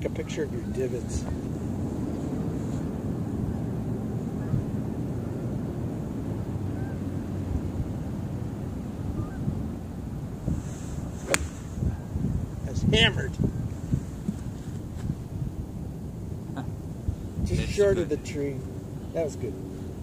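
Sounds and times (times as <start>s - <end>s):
wind rumbling on microphone: 0.0s - 20.0s
golf club striking ball: 11.2s - 11.7s.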